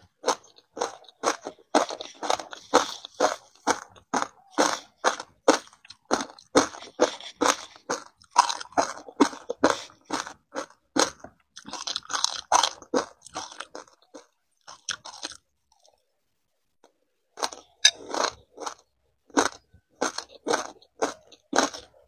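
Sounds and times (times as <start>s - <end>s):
person chewing ice crunching: 0.0s - 16.0s, 17.4s - 22.0s.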